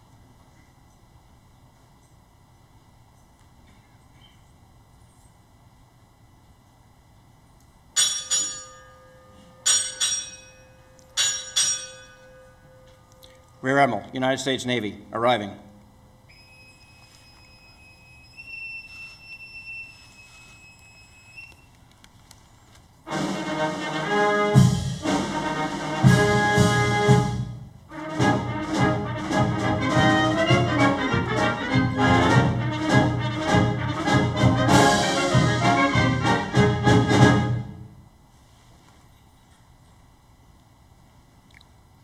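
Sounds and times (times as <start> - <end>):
boatswain's pipe shrill note: 16.3 - 21.7
military brass band playing: 23.1 - 38.0.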